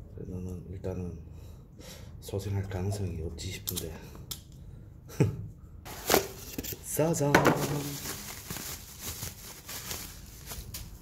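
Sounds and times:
bubble wrap rustling and crinkling: 5.9s - 11.0s.

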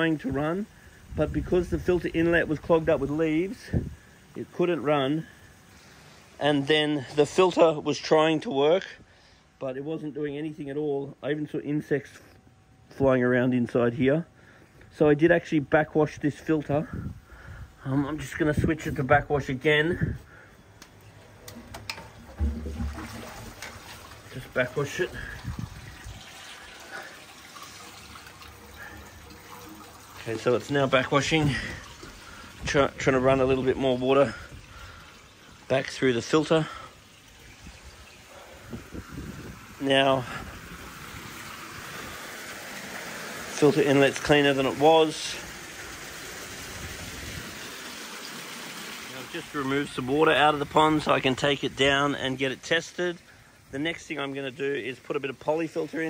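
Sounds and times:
water moving through pipes: 0.0s - 11.2s, 13.7s - 56.0s
plastic valve handle clicks: 20.8s - 22.5s.

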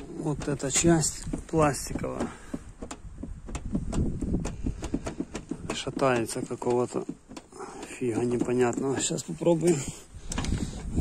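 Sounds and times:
plastic trim panel knocking: 0.0s - 9.7s.

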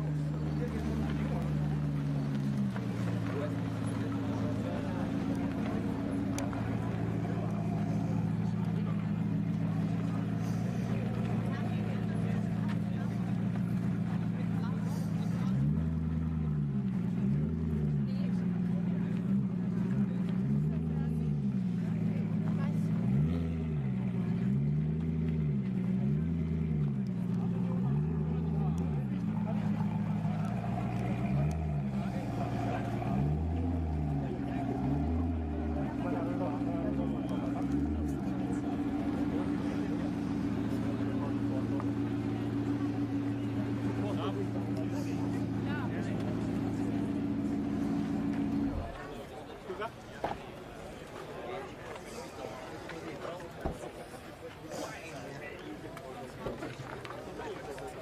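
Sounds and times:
car engine idling and revving: 0.0s - 58.0s
crowd chatter: 0.0s - 58.0s.

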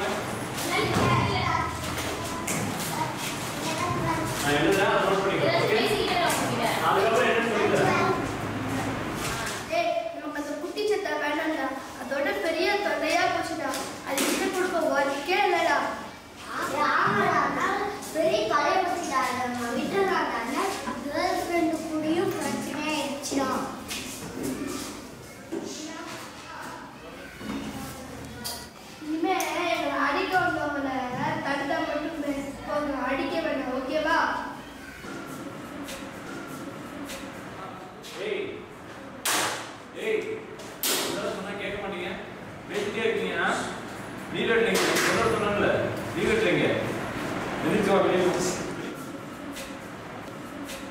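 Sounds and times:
children's voices murmuring: 0.0s - 38.0s
boy talking: 0.6s - 34.7s
sharp loud smacks: 39.2s - 39.7s, 40.8s - 41.2s.

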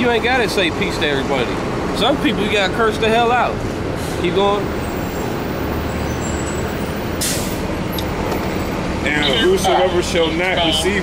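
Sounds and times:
vehicle engines rumbling: 0.0s - 11.0s.

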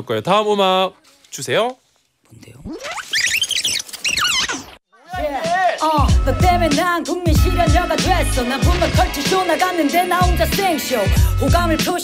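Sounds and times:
high-pitched warbling squeals: 2.6s - 4.8s.

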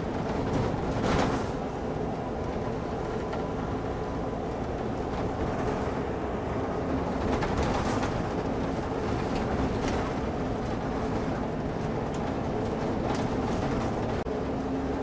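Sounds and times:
bus engine and road rumble: 0.0s - 15.0s.

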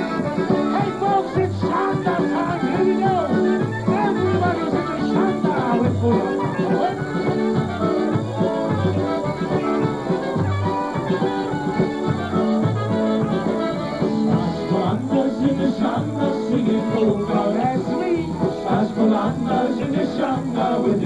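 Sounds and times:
trumpet: 0.0s - 19.2s
bass beat: 0.0s - 21.0s
concertina: 0.0s - 21.0s
polka band playing: 0.0s - 21.0s.

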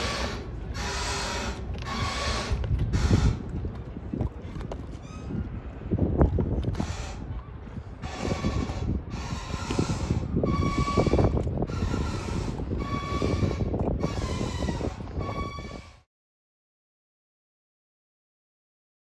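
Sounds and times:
wind on microphone: 0.0s - 16.1s.

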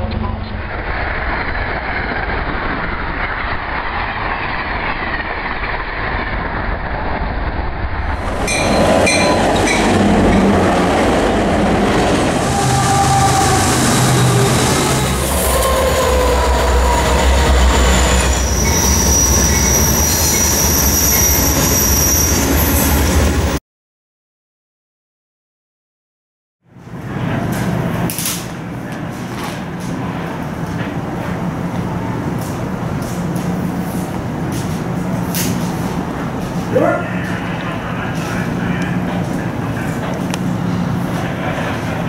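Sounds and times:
freight train heavy rumble: 0.0s - 23.6s, 26.8s - 42.0s
passenger train passing: 0.0s - 23.6s, 26.8s - 42.0s
high wheel squeal: 12.4s - 23.3s.

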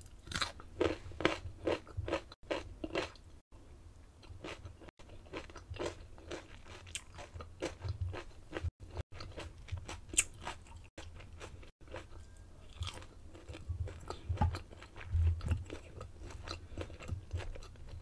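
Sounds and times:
chewing and crunching crisp food: 0.0s - 3.4s, 4.2s - 18.0s.

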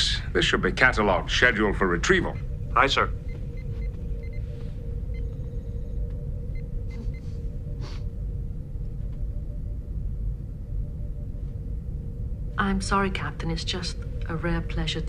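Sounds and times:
steady low rumble: 0.0s - 15.0s
soft high computer chirps: 2.0s - 7.6s
faint held tone: 2.3s - 12.5s.

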